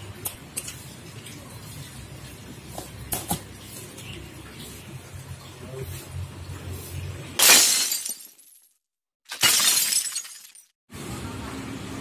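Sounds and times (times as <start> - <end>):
glass breaking crash: 7.4 - 8.7, 9.3 - 10.8.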